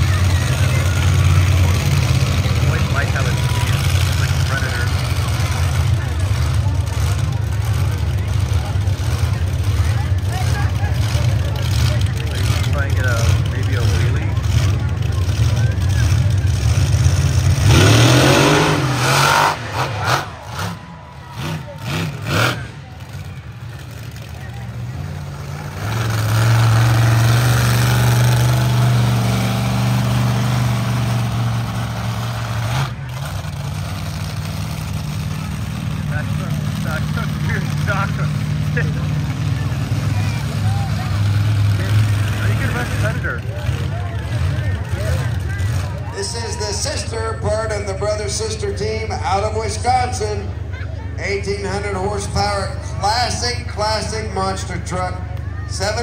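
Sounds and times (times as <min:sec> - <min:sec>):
monster truck engines running: 0:00.0 - 0:56.0.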